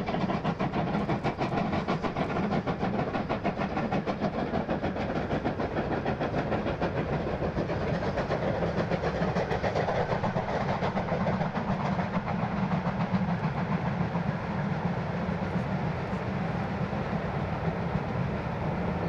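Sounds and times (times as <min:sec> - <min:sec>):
steam locomotive chuffing: 0:00.0 - 0:19.0.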